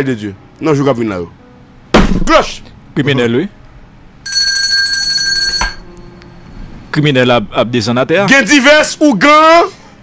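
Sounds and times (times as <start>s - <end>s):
high bell-like ringing tone: 4.3s - 5.9s.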